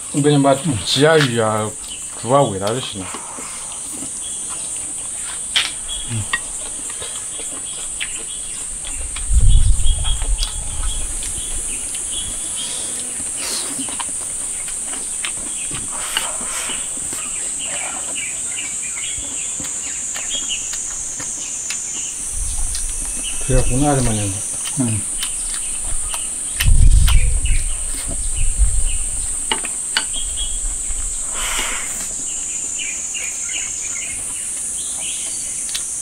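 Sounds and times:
high-pitched insect chorus: 0.0s - 36.0s
low rumble: 8.4s - 12.5s, 25.8s - 29.5s.

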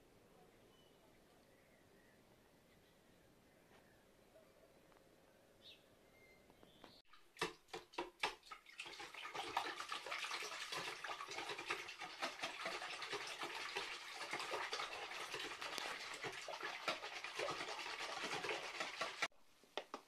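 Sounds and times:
wire whisk beating batter in bowl: 8.2s - 19.3s.

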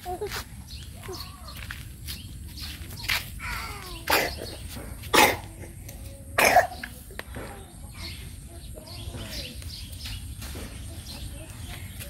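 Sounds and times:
hoarse coughs: 4.1s - 5.7s, 6.4s - 6.8s.

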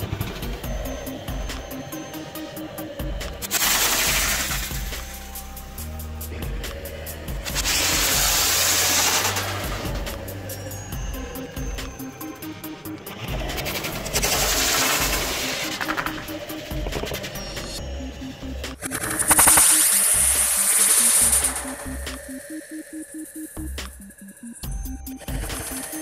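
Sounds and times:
electronic music with fast beat: 0.0s - 26.0s
loud hissing rushes of launcher firing: 3.5s - 5.3s, 7.4s - 9.9s.

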